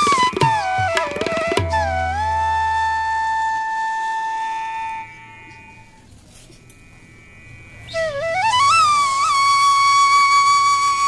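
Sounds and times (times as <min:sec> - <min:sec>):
flute holding long note: 0:00.0 - 0:06.1, 0:07.6 - 0:11.0.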